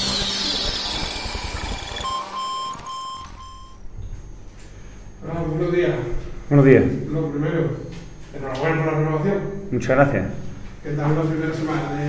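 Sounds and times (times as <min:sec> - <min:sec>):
short electronic beeps: 0:00.0 - 0:04.3.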